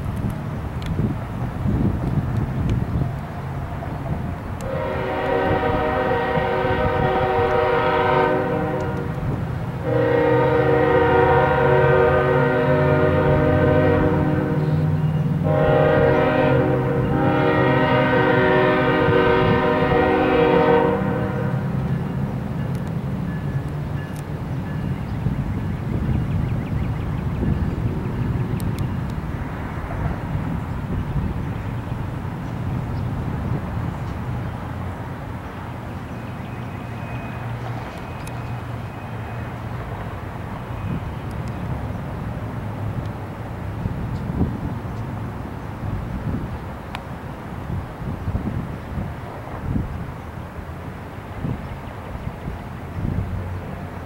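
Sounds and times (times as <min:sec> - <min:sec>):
diesel engines rumbling: 0:00.0 - 0:54.0
locomotive air horn: 0:04.6 - 0:21.8.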